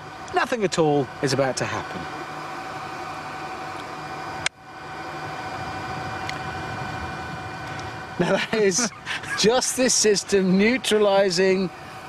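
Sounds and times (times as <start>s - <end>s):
faint steady tones: 0.0s - 12.0s
steady hiss and hum: 0.0s - 12.0s.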